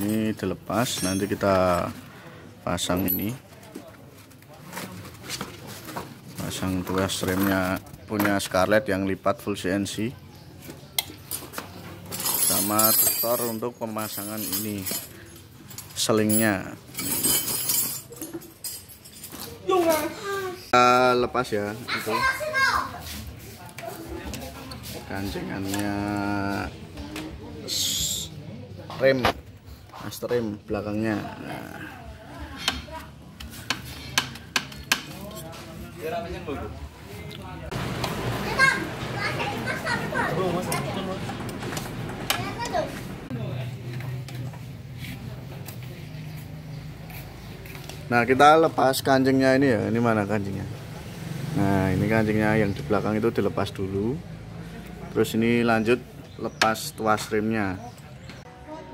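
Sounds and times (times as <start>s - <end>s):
bright rustle of handled parts: 0.0s - 2.2s, 2.8s - 8.6s, 10.5s - 20.4s
voices talking: 18.1s - 58.9s.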